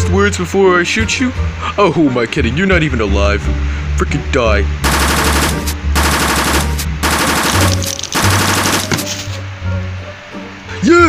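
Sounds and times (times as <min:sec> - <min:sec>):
machine-gun fire bursts: 0:04.8 - 0:09.2.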